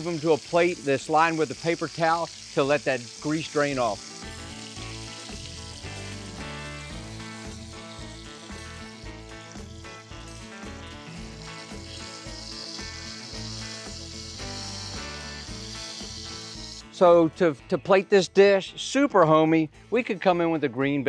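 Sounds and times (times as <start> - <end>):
chicken frying in oil: 0.0 - 16.9.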